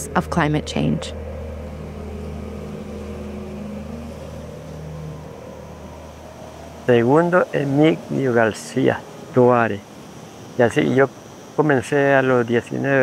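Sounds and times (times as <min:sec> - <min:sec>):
low drone of background score: 0:00.0 - 0:11.0.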